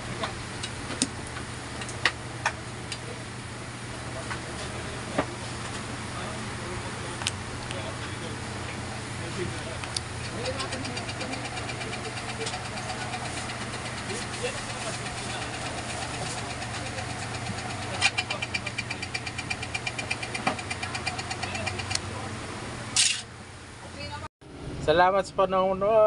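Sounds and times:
fan motor humming: 0:00.0 - 0:26.0
light regular ticking: 0:09.8 - 0:22.0.

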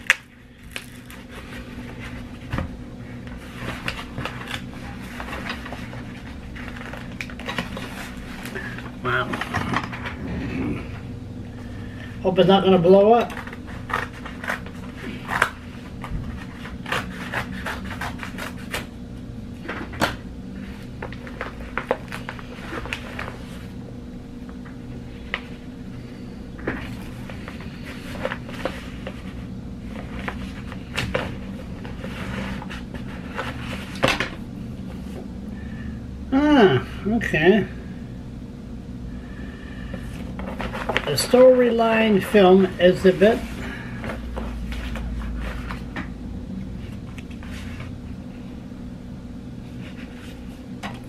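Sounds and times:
cardboard package being handled: 0:00.0 - 0:10.2, 0:13.2 - 0:18.9, 0:40.0 - 0:41.6
low hum: 0:00.0 - 0:51.0.

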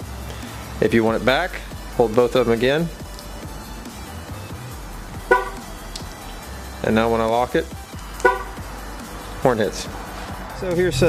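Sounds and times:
background music: 0:00.0 - 0:11.0
car horn chirp: 0:05.2 - 0:05.8, 0:08.2 - 0:08.7.

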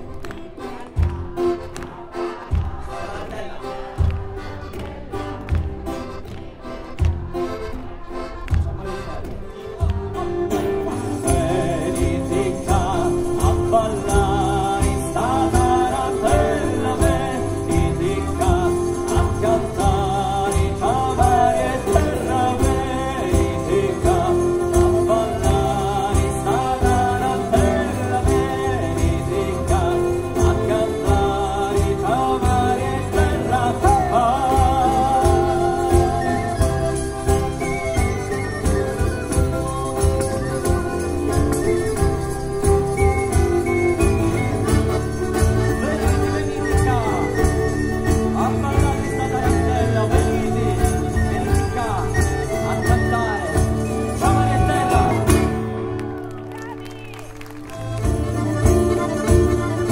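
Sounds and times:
folk band playing: 0:00.0 - 0:59.9
electric bass: 0:04.0 - 0:56.3
man singing: 0:08.7 - 0:55.9
jingling frame drum: 0:09.8 - 0:55.7, 0:57.8 - 0:59.9.

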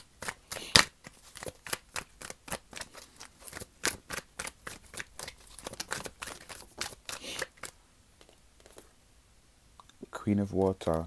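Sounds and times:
cards being shuffled: 0:00.0 - 0:08.9.

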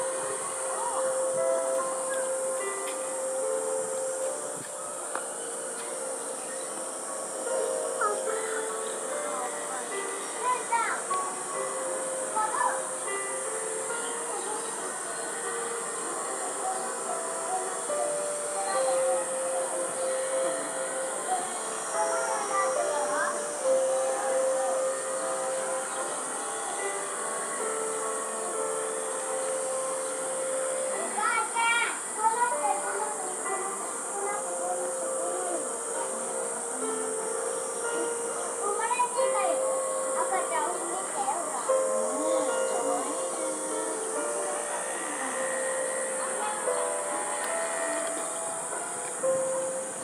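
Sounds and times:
distant voices: 0:00.0 - 0:50.0
music with held stepping notes: 0:00.0 - 0:50.0
steady high hiss: 0:00.0 - 0:50.0.

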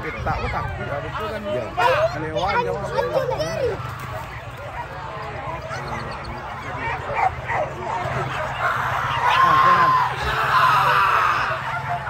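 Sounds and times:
crowd chatter: 0:00.0 - 0:12.0
dogs yipping and barking: 0:05.6 - 0:09.8.

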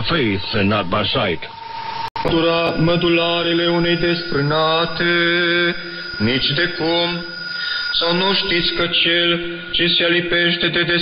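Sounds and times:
steady high whistle: 0:00.0 - 0:11.0
man chanting long notes: 0:02.2 - 0:11.0.

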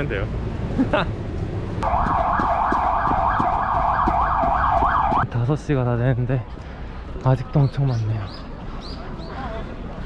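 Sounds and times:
siren-like wail sweeping in pitch: 0:01.8 - 0:05.2.

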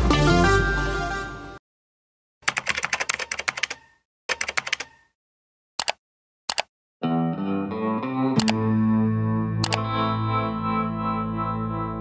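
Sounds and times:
rapid keyboard typing: 0:02.4 - 0:05.1.

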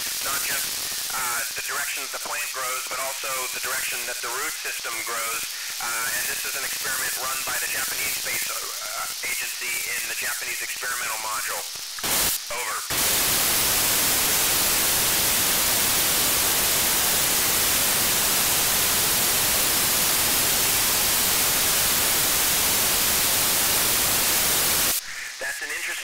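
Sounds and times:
radio static hiss: 0:00.0 - 0:26.0.

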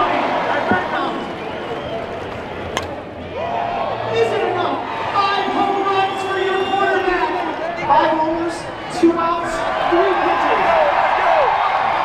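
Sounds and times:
crowd yelling and cheering: 0:00.0 - 0:12.0
bat hitting softball: 0:02.7 - 0:03.0.

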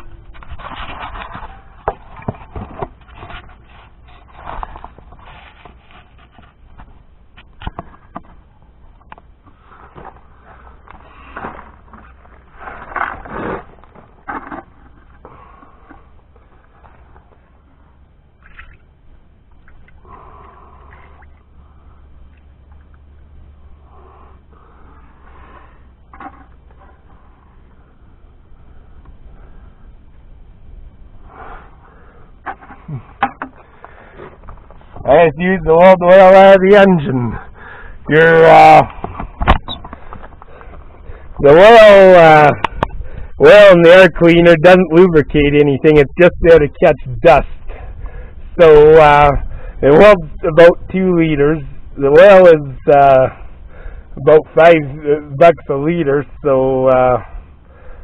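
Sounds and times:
metal objects scraping on gravel: 0:00.0 - 0:06.9, 0:09.9 - 0:16.1
knocks of objects set down: 0:32.4 - 0:33.6.

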